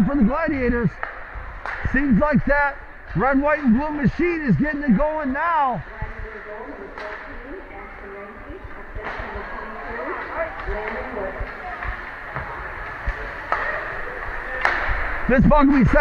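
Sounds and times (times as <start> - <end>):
spectators chattering: 0.0 - 16.0
hockey sticks and puck knocking: 1.0 - 2.0, 10.1 - 16.0.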